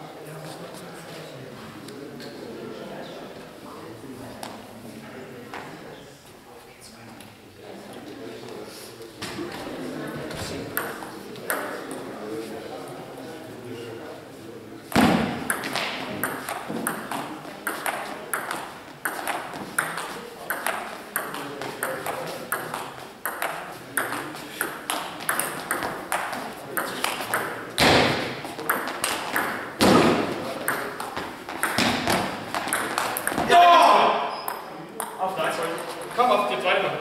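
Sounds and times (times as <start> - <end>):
table tennis ball clicking: 15.5 - 27.6, 28.7 - 29.7, 30.6 - 33.5
man shouting: 33.5 - 34.3.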